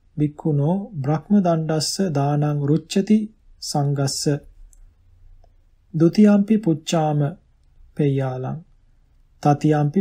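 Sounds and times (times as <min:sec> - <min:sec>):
man reading aloud: 0:00.0 - 0:04.7, 0:05.8 - 0:10.0.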